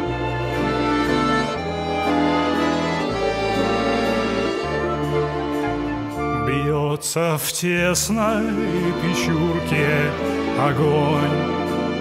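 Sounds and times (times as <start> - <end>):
accordion chords: 0.0 - 12.0
bass line: 0.0 - 12.0.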